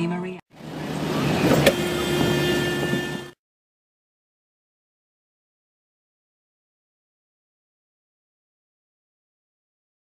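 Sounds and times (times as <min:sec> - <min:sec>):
road and engine rumble: 0:00.0 - 0:03.4.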